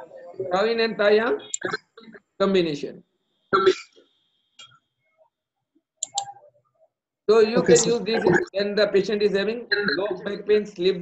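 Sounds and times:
computer mouse clicks: 0:06.0 - 0:06.3.

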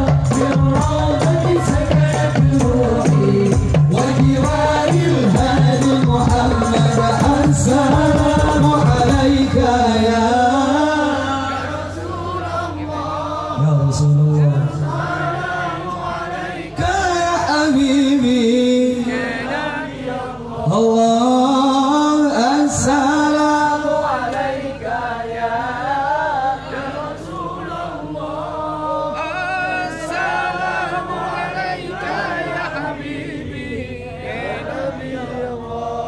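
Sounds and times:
men chanting in unison: 0:00.0 - 0:36.0
men singing devotional song: 0:00.0 - 0:36.0.

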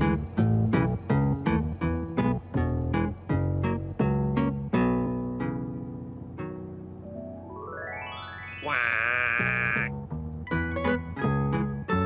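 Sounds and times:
plucked keyboard notes: 0:00.0 - 0:12.0
wobbling comic wow voice: 0:08.5 - 0:09.9.

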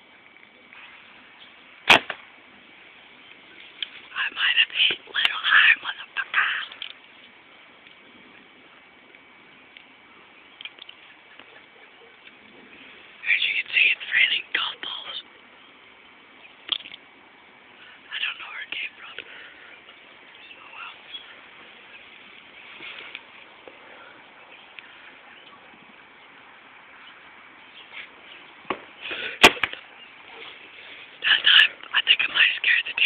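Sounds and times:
person whispering: 0:04.1 - 0:06.8, 0:13.2 - 0:15.3, 0:18.0 - 0:19.4, 0:20.6 - 0:21.1, 0:31.2 - 0:33.0.

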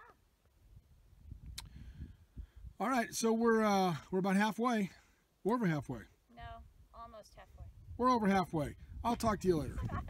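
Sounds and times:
wind rumble on microphone: 0:00.6 - 0:02.8, 0:06.4 - 0:10.0.

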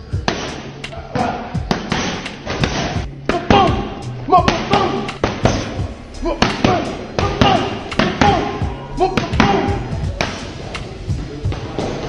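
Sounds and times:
background music: 0:00.0 - 0:12.0
boxing gloves smacking mitts: 0:00.2 - 0:08.6.

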